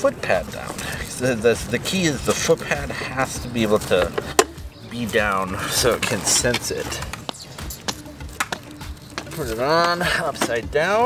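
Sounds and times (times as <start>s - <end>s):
faint background music: 0.0s - 11.0s
straps and buckles clicking: 0.0s - 11.0s.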